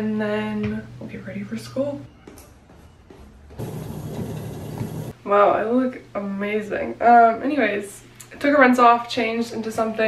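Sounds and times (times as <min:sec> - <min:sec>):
treadmill motor hum and belt noise: 0:02.7 - 0:05.2.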